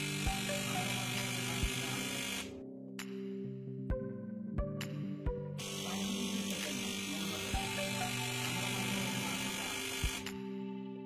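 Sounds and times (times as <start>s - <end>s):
loud electric buzz: 0.0s - 2.5s, 5.6s - 10.4s
background music: 0.0s - 11.0s.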